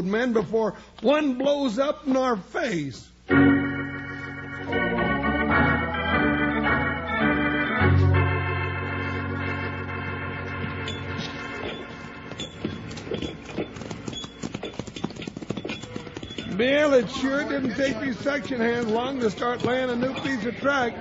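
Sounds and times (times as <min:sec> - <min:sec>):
organ chords: 0:03.2 - 0:21.0
horse hoofbeats: 0:10.8 - 0:21.0.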